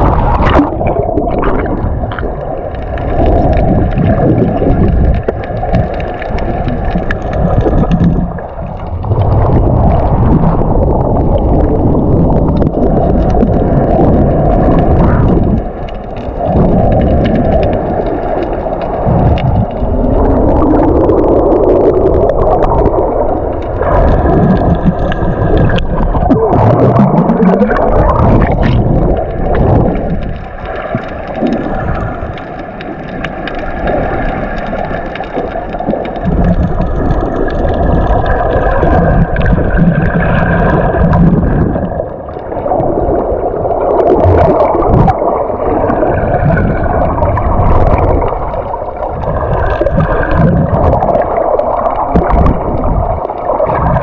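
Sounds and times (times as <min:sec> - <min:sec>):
underwater water gurgling: 0:00.0 - 0:54.0.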